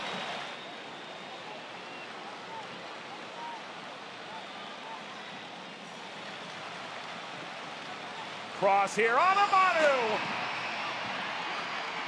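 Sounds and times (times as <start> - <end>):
stadium ambience: 0.0 - 12.0.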